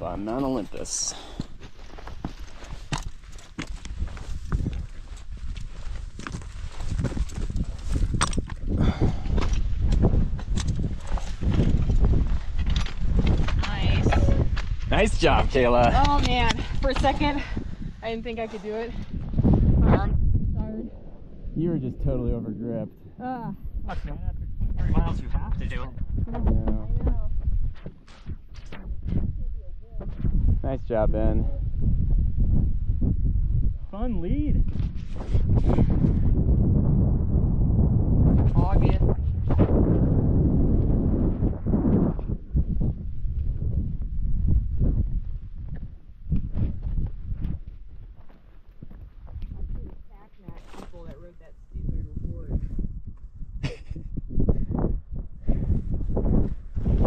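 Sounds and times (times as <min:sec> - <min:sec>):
wind rumble on microphone: 0:00.0 - 0:57.0
footsteps scraping on loose rock: 0:01.3 - 0:15.2, 0:46.5 - 0:51.2.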